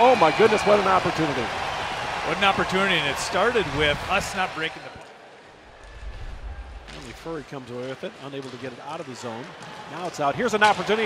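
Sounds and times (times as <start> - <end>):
low rumbling whoosh: 5.7 - 7.4.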